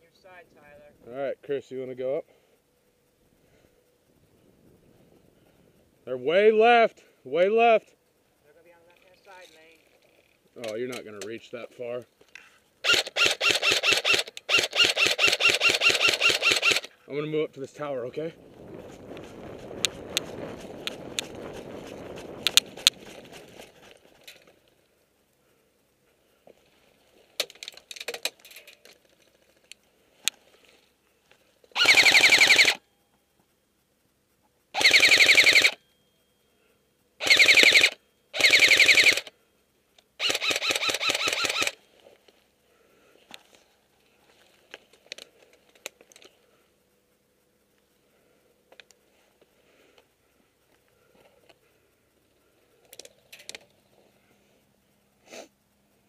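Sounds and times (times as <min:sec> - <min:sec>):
airsoft gun full-auto bursts: 0:12.8 - 0:17.0, 0:31.7 - 0:32.8, 0:34.7 - 0:35.8, 0:37.2 - 0:39.4, 0:40.2 - 0:41.8
scuffing movement noise: 0:18.8 - 0:24.2.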